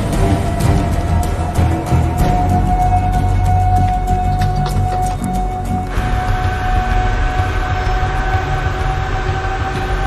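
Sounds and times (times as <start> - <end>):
dense rumbling noise: 0.0 - 10.0.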